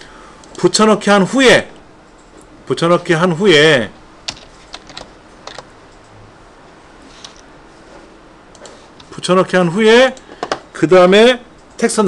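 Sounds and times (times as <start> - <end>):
keyboard keys clicking: 4.2 - 6.1.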